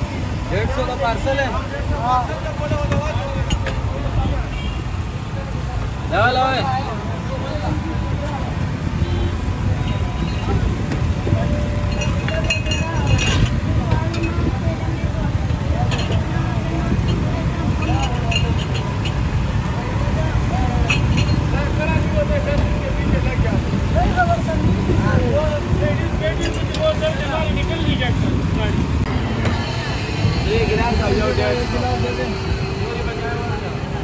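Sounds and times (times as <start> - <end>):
passing traffic rumble: 0.0 - 34.0.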